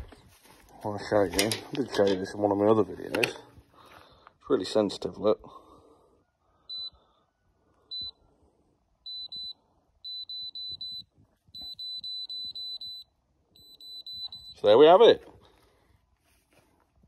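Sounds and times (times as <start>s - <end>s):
moisture meter beeping: 6.7s - 7.0s, 7.9s - 8.2s, 9.0s - 15.1s.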